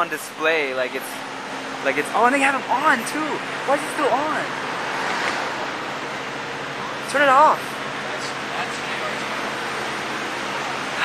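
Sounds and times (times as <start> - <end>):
steady rushing noise: 0.6 - 9.2.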